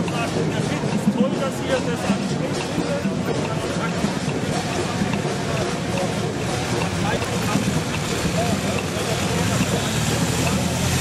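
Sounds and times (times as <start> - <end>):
motorcycle engines rumbling: 0.0 - 11.0
street noise: 0.0 - 11.0
voices: 0.0 - 11.0.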